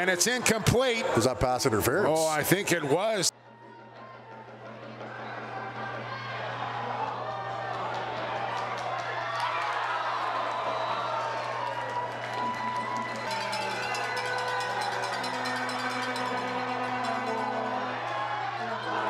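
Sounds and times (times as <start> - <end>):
crowd cheering and shouting: 0.0 - 19.0
music playing: 12.2 - 19.0.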